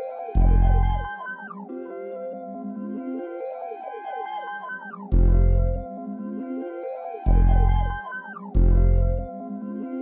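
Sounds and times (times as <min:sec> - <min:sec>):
dark synth arpeggio: 0:00.0 - 0:03.3, 0:03.9 - 0:06.0, 0:07.2 - 0:09.3.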